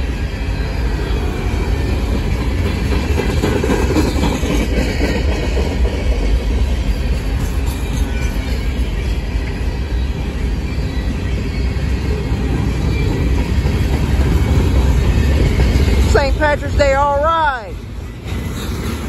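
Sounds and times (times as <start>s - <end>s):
steel wheels rumbling on rails: 0.0s - 19.0s.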